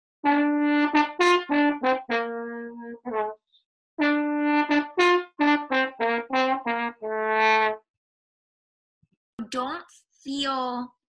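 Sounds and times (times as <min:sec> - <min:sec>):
trombone playing: 0:00.2 - 0:03.4, 0:04.0 - 0:07.8.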